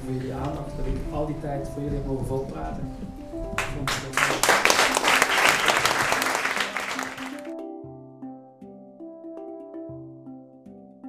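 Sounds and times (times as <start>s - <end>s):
background music: 0.0s - 11.0s
audience applauding: 3.6s - 7.5s.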